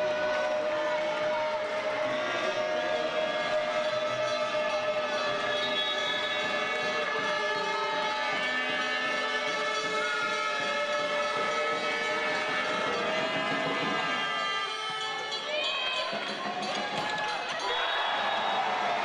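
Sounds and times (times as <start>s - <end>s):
horns blowing held tones: 2.0s - 18.2s.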